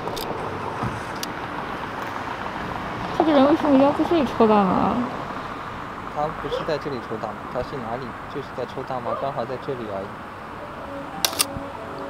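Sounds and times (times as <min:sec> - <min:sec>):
people talking: 0:03.2 - 0:05.1, 0:06.2 - 0:10.1
camera mechanism clicks: 0:11.3 - 0:11.5.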